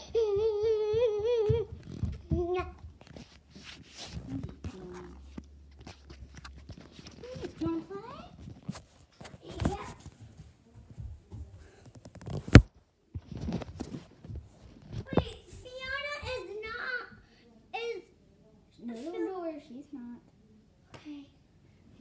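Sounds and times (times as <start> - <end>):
child's wordless voice: 7.1 - 8.4, 9.4 - 10.0, 15.0 - 19.9.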